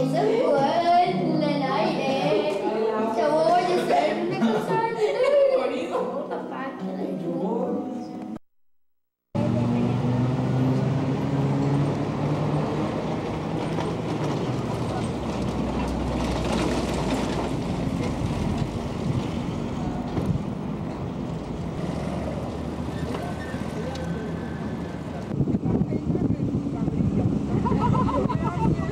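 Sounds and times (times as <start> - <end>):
traffic rumble: 9.4 - 28.9
vehicle passing close: 9.4 - 28.9.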